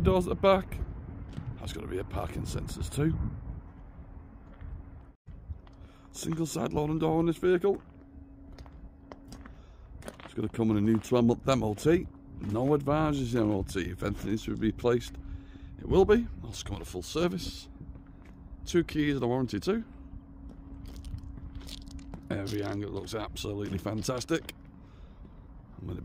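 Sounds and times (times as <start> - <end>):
faint low rumble: 0.0 - 26.0
thin steady hum: 2.1 - 26.0
footsteps on gravel: 3.7 - 26.0.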